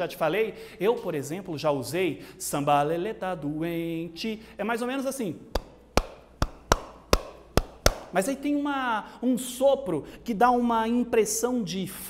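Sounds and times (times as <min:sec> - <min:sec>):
hand claps: 0:05.5 - 0:08.2.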